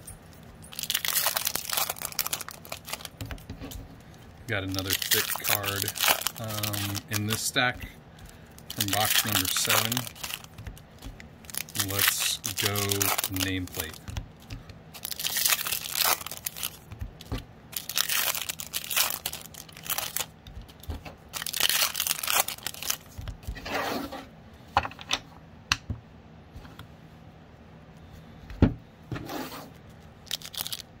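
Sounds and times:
foil wrappers crinkling and tearing: 0.7s - 23.6s, 30.2s - 30.9s.

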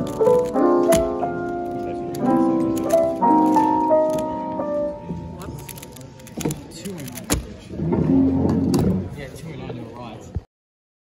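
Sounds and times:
piano music: 0.0s - 6.8s
people talking: 9.1s - 10.5s.

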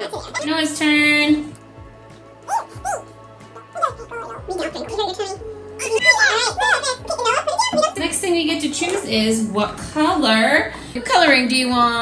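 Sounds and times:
background music: 0.0s - 12.0s
child vocal sounds: 2.4s - 8.0s.

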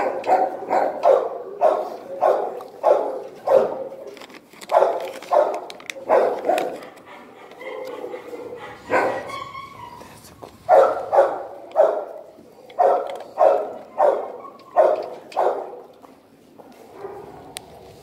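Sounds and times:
large dog barking: 0.0s - 10.0s, 10.6s - 16.0s, 16.9s - 18.0s.

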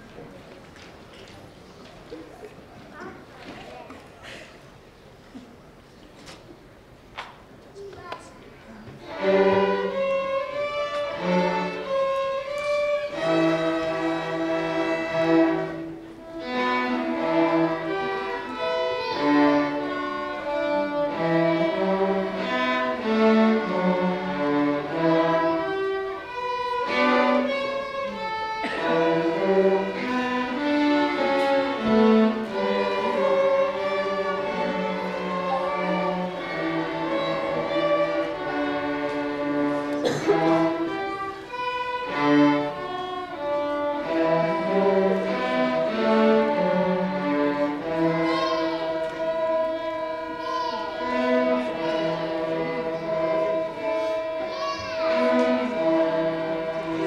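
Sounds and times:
string orchestra playing dance music: 9.0s - 57.0s.

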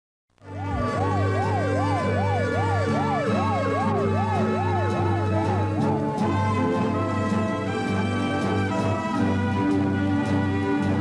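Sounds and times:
emergency vehicle siren wailing: 0.4s - 9.9s
sustained music notes: 0.4s - 11.0s.

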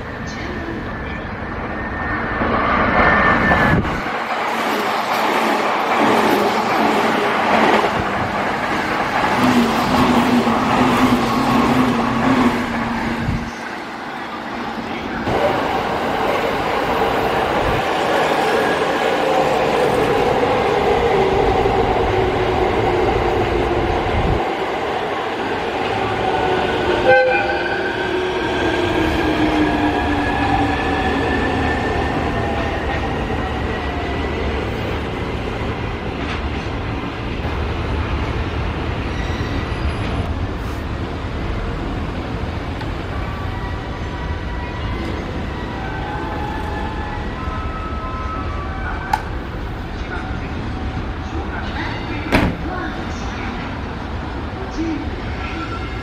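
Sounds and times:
train arriving: 0.0s - 56.0s.

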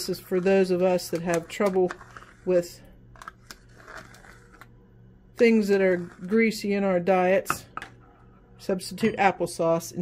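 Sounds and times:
spoon scraping plastic cup: 0.0s - 4.7s, 5.4s - 6.6s.

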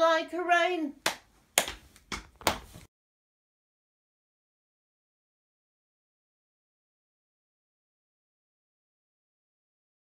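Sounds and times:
hand claps: 1.0s - 2.8s.

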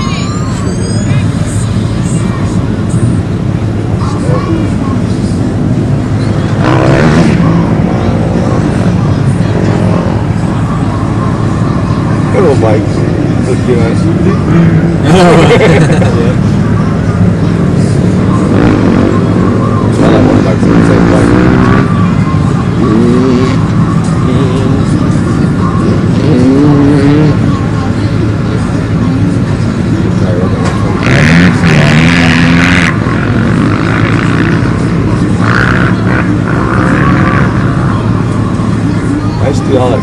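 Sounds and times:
truck engines idling: 0.0s - 40.0s.

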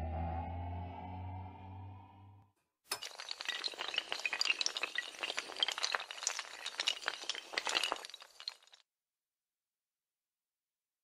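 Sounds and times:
dominoes toppling clatter: 3.0s - 8.8s.

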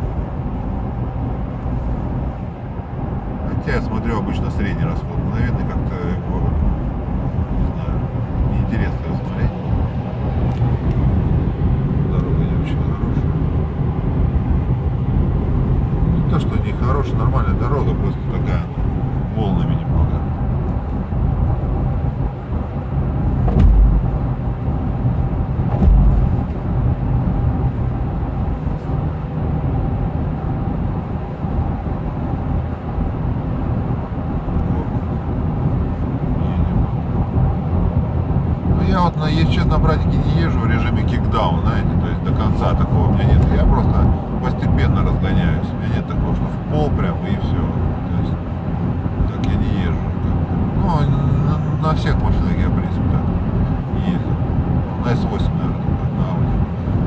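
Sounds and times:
diesel engine drone: 0.0s - 57.0s
road and tyre noise: 0.0s - 57.0s
short low thumps: 22.9s - 28.6s.

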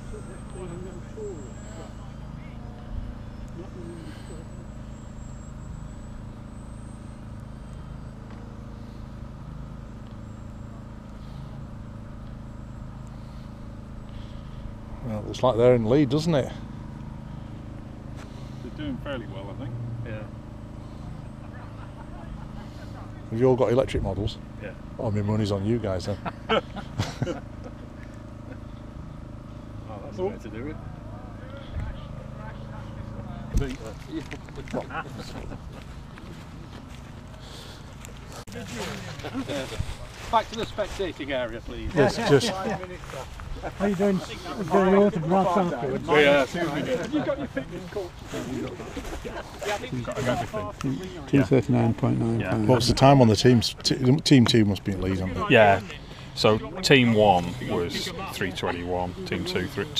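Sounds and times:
faint voices: 0.0s - 26.2s, 27.8s - 59.9s
faint high whine: 0.0s - 53.2s
model airplane motor droning: 0.0s - 59.9s.

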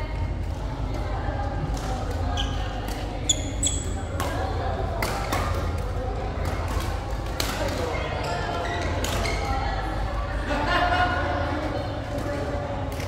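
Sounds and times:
voices in a hall: 0.0s - 13.0s
shoes squeaking on court: 2.4s - 4.2s.

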